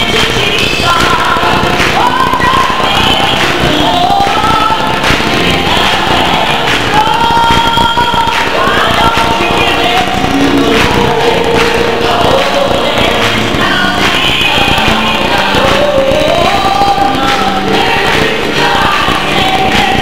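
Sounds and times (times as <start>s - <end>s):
gospel choir singing: 0.0s - 20.0s
woman soloist singing: 0.0s - 20.0s.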